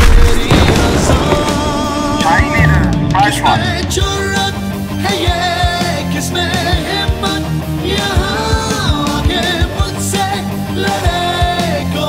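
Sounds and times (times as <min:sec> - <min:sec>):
explosion: 0:00.0 - 0:02.7
dramatic music score: 0:00.0 - 0:12.0.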